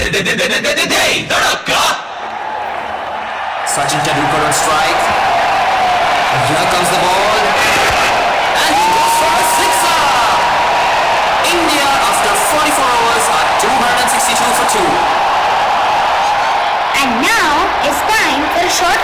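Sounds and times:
crowd shouting and cheering: 0:01.1 - 0:19.0
dance music: 0:11.3 - 0:15.4.

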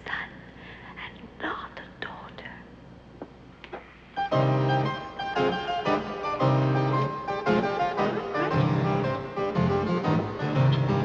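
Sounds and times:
girl whispering: 0:00.0 - 0:02.7.

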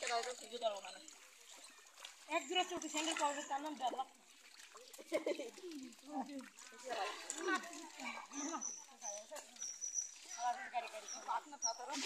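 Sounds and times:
people talking: 0:00.0 - 0:01.0, 0:10.3 - 0:12.0.

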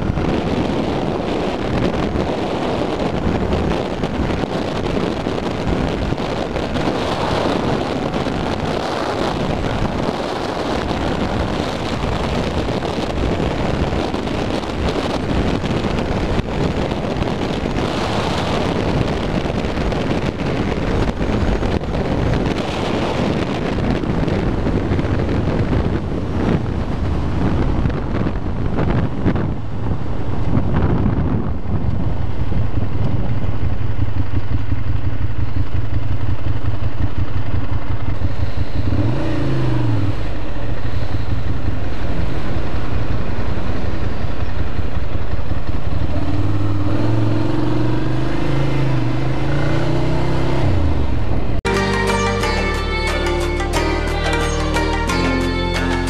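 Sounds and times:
motorcycle engine: 0:00.0 - 0:56.0
wind rush: 0:00.0 - 0:56.0.

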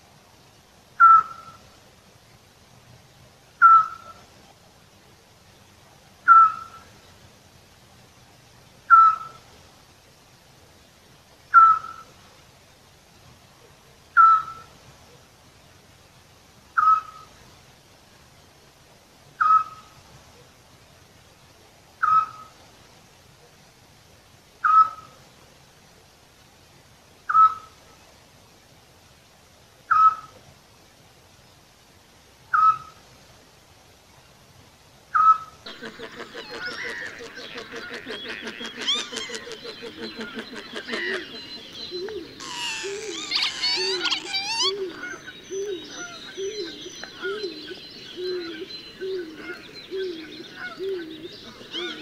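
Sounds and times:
owl whistled note: 0:41.9 - 0:45.0.

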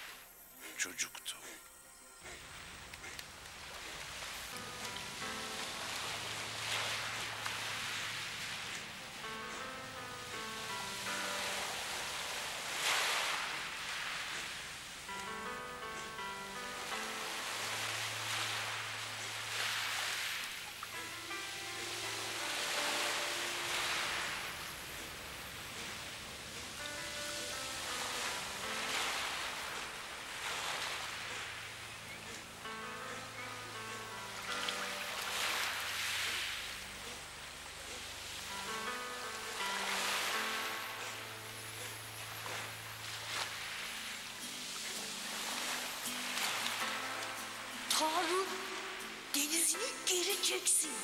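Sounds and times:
soft film score: 0:00.0 - 0:51.0
surf washing onto beach: 0:03.6 - 0:09.4, 0:10.3 - 0:15.2, 0:16.2 - 0:31.8, 0:34.2 - 0:37.2, 0:37.9 - 0:48.8.

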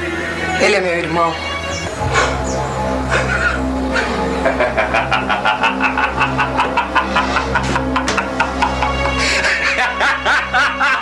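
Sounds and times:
background music: 0:00.0 - 0:11.0
man laughing loudly: 0:03.1 - 0:11.0.

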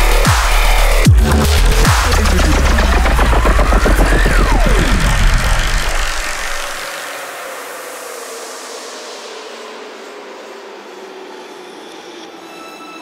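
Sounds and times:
heavy sub-bass: 0:00.0 - 0:07.0
gliding synth tone: 0:01.0 - 0:06.9.

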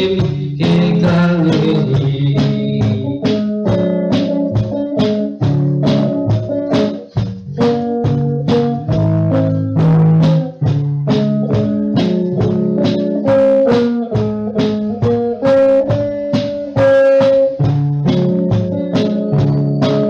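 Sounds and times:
electric guitar held notes: 0:00.0 - 0:20.0
steady beat: 0:00.0 - 0:20.0.

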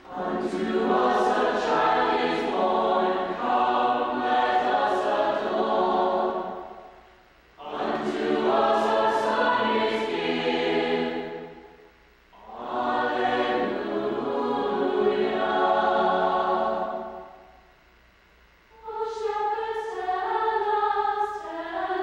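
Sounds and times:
mixed choir singing: 0:00.0 - 0:06.9, 0:07.6 - 0:11.8, 0:12.4 - 0:17.4, 0:18.7 - 0:22.0.

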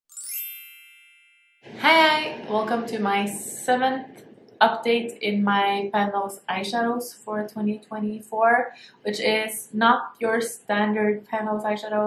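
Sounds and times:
bright bell-like chime: 0:00.1 - 0:01.7.

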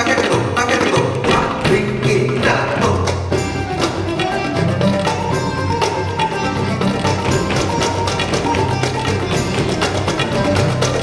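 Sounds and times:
fast percussion beat: 0:00.0 - 0:11.0
sustained melody notes: 0:03.3 - 0:11.0.

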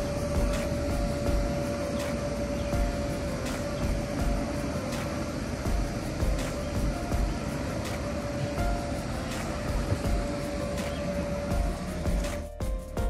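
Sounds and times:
background music: 0:00.0 - 0:13.0
blower fan whirring: 0:00.0 - 0:13.0.

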